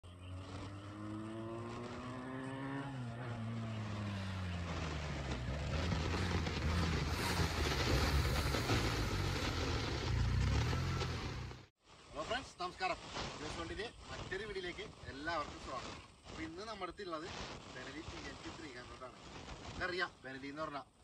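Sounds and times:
motorcycle engine accelerating: 0.1 - 11.7.

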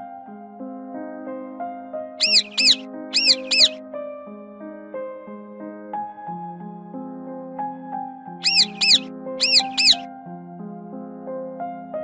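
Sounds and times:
cartoon bird chirps: 2.2 - 3.8, 8.4 - 10.0.

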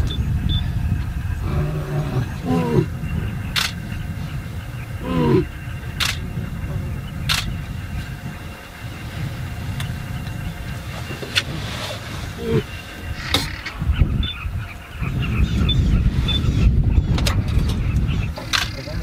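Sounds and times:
lion calling: 0.0 - 17.1
vehicle engine idling: 0.0 - 19.0
sharp clicks: 3.5 - 3.9, 6.0 - 6.3, 7.3 - 7.7, 18.4 - 19.0.

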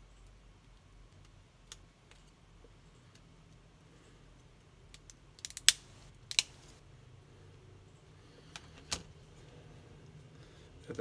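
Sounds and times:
plastic clips snapping: 4.9 - 6.6.

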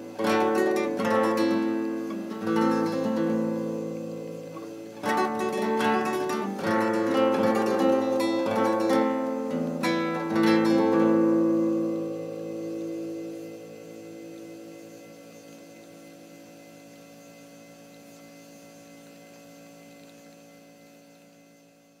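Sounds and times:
classical guitar chord ringing: 0.0 - 14.8
electrical hum: 0.0 - 22.0.

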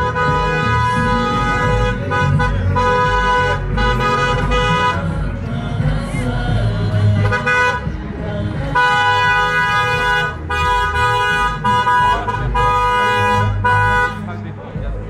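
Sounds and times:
car horn blasts: 0.0 - 5.2, 7.1 - 8.0, 8.6 - 14.3.

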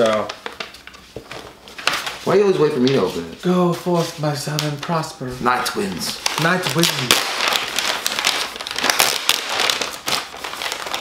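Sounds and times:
envelope tearing and crinkling: 0.0 - 3.3, 5.5 - 11.0.

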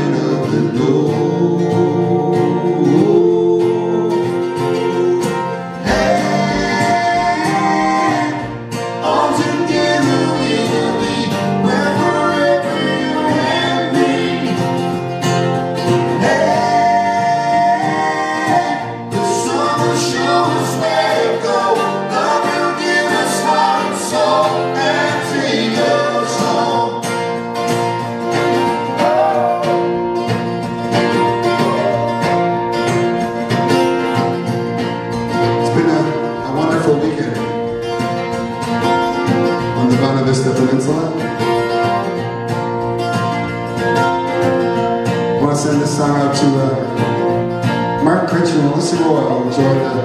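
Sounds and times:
person singing: 0.0 - 15.0, 15.8 - 27.1, 28.4 - 30.2, 31.4 - 32.5
strummed acoustic guitar: 0.0 - 50.0.

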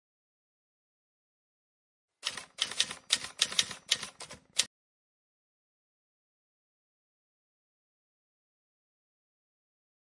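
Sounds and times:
typewriter key clacks: 2.2 - 4.7.

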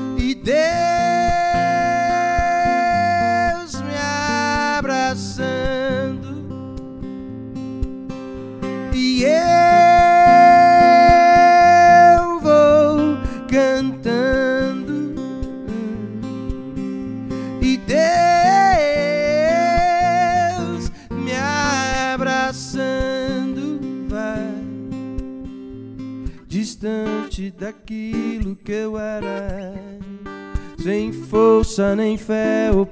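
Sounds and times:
man singing: 0.0 - 6.6, 8.6 - 25.0, 26.4 - 32.9
strummed acoustic guitar: 0.0 - 32.9.

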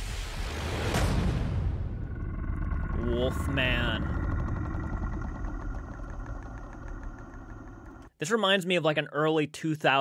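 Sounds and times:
low rumbling drone: 1.5 - 8.1.

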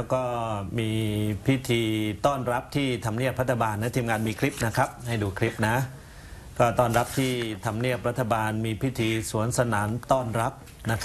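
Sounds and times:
man speaking: 0.0 - 6.0, 6.6 - 11.0.

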